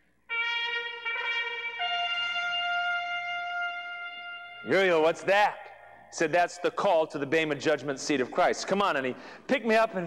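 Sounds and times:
trumpet fanfare: 0:00.3 - 0:05.5.

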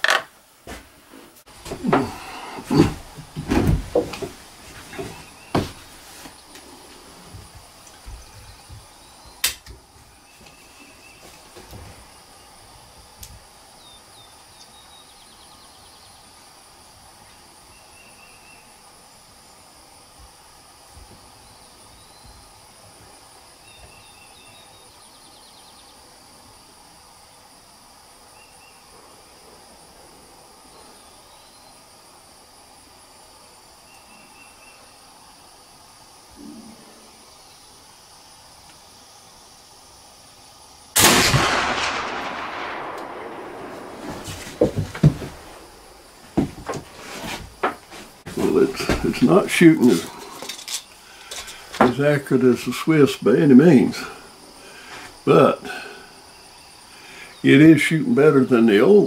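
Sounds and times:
high insect buzz: 0:01.4 - 0:59.0
rifle shot boom: 0:41.0 - 0:45.8.

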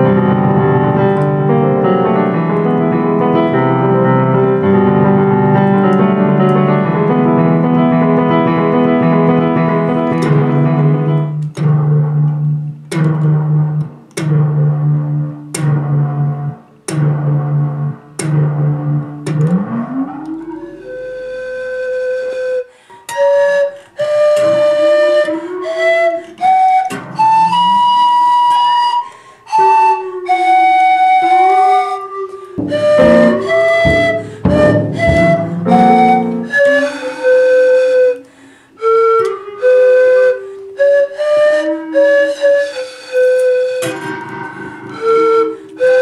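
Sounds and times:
pan flute long note: 0:20.0 - 0:38.2.

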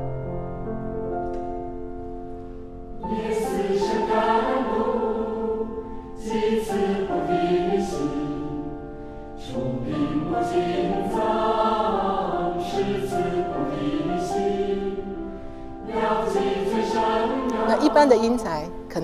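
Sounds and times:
choir singing held chords: 0:03.0 - 0:19.0.

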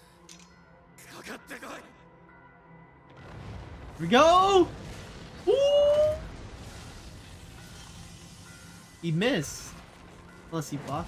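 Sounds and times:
faint soundtrack music: 0:00.0 - 0:11.0
man saying ooh: 0:05.5 - 0:06.2.

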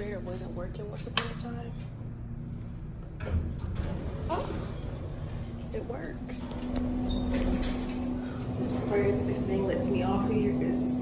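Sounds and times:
elevator rumble: 0:00.0 - 0:11.0.

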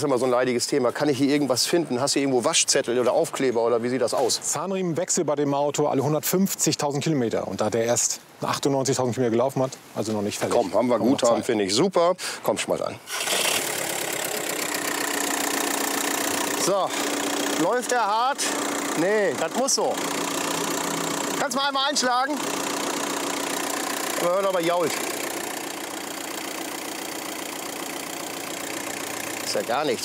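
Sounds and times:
diesel engine starting and idling: 0:13.1 - 0:30.0.

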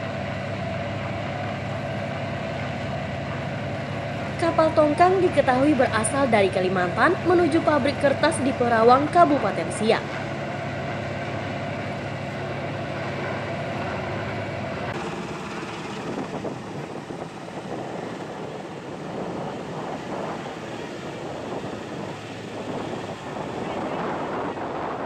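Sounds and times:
helicopter rotor and engine drone: 0:00.0 - 0:25.0.

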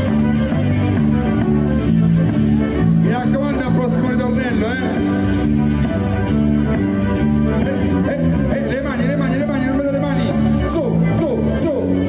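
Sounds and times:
electric bass: 0:00.0 - 0:12.0
keyboard: 0:00.0 - 0:12.0.

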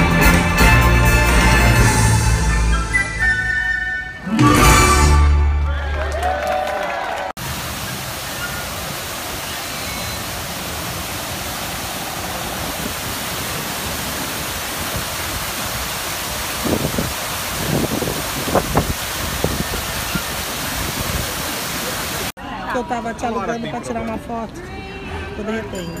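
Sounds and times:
waterfall splashing into pool: 0:07.2 - 0:22.4.

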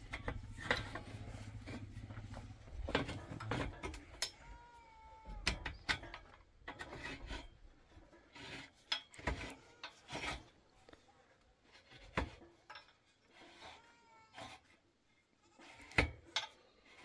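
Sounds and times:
metal clinks and knocks: 0:00.0 - 0:08.2.

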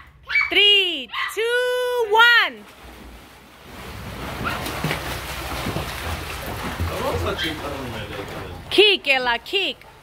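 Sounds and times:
children splashing in pool: 0:02.5 - 0:09.2.

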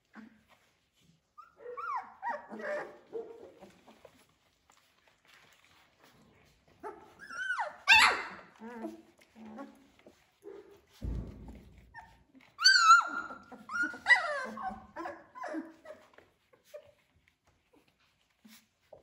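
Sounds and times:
puppies yipping and whining: 0:00.0 - 0:19.0
soft low thud: 0:10.9 - 0:12.1.

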